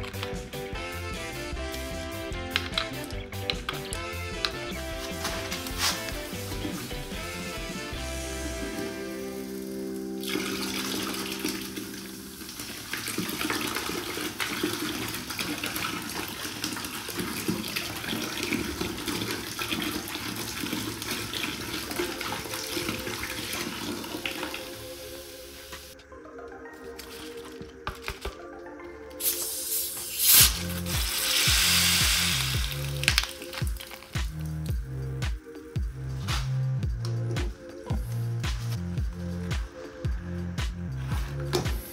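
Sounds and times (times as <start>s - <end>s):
electronic music with heavy bass: 0.0s - 10.2s, 29.3s - 41.9s
drink pouring into bucket: 4.4s - 25.0s, 30.1s - 34.5s.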